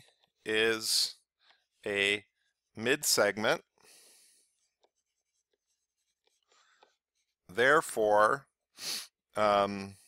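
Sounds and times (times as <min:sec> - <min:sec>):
stylus tapping and scratching screen: 0:04.4 - 0:07.8.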